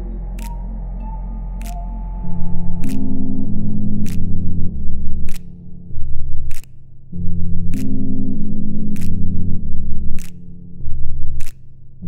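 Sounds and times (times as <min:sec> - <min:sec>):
low bass notes: 0:00.0 - 0:12.0.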